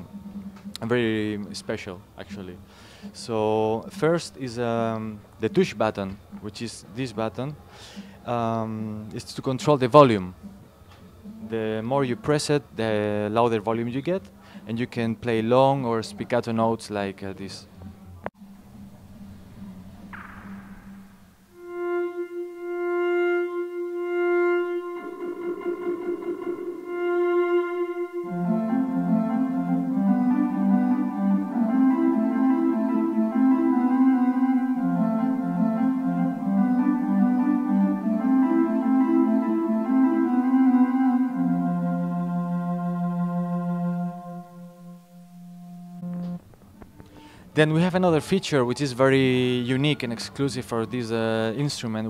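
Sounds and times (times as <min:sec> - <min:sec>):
electronic tones with reverb: 0:20.0 - 0:46.4
electronic keyboard melody: 0:21.5 - 0:46.5.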